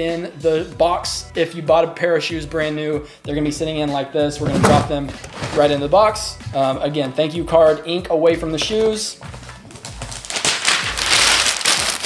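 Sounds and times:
packing paper crumpling: 0:09.7 - 0:12.0.

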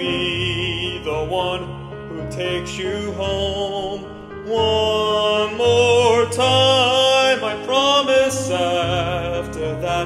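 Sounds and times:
man singing pop vocal: 0:00.0 - 0:10.0.

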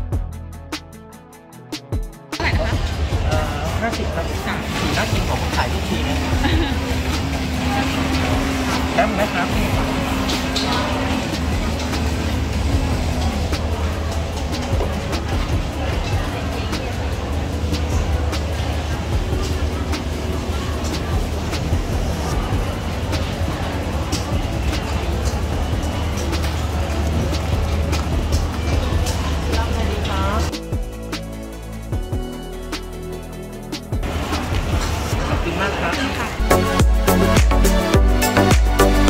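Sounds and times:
music: 0:00.0 - 0:39.0.

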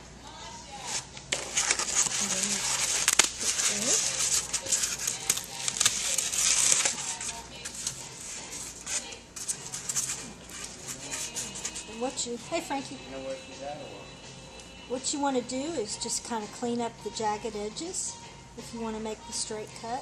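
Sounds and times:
styrofoam rubbing and crackling: 0:00.8 - 0:12.3.

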